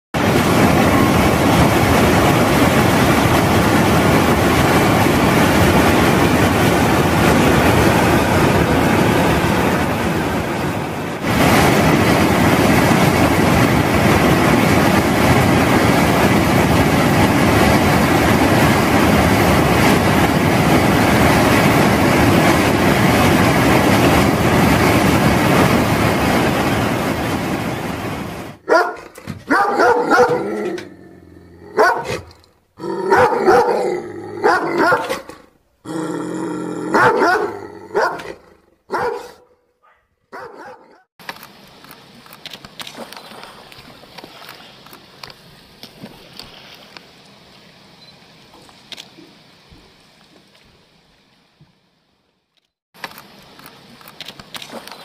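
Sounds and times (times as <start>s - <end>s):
whitewater rapids rushing: 0.2s - 28.6s
dog barking sharply: 28.6s - 30.6s, 31.8s - 32.3s, 33.1s - 33.8s, 34.4s - 35.4s, 37.0s - 41.0s.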